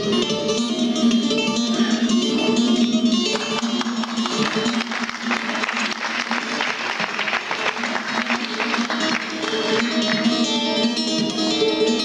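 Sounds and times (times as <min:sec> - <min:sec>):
plucked lute: 0:00.0 - 0:12.0
audience applause: 0:03.3 - 0:10.7.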